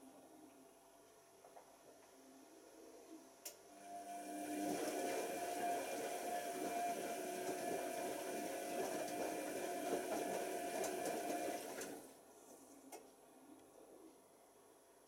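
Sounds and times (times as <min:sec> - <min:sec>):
washing machine motor hum: 0:03.7 - 0:12.2
wet laundry sloshing: 0:04.6 - 0:12.1.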